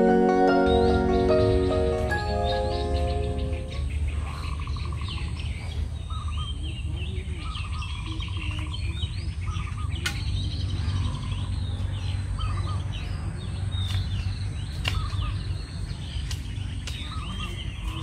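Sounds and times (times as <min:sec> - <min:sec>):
background music: 0:00.0 - 0:04.1
bird trilling: 0:00.0 - 0:05.4
birds chirping and calling: 0:00.0 - 0:18.0.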